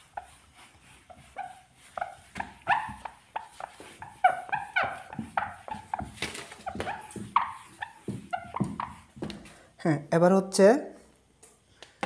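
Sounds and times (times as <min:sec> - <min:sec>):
marker squeaking on whiteboard: 0:00.0 - 0:09.4.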